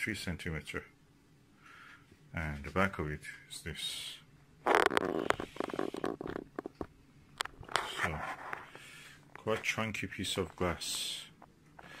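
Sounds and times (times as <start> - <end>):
small clicks and taps: 4.7 - 7.8.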